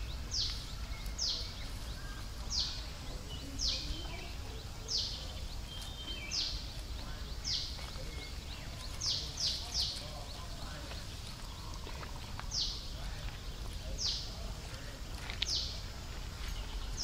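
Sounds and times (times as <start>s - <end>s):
bird calling: 0.0s - 17.0s.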